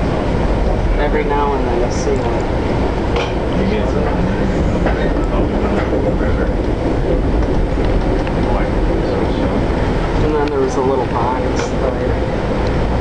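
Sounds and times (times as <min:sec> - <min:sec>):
passenger train rolling on track: 0:00.0 - 0:13.0.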